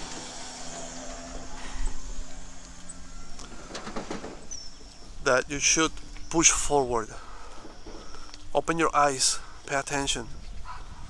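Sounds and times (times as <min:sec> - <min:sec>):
motor vehicle engine humming: 0:00.0 - 0:11.0.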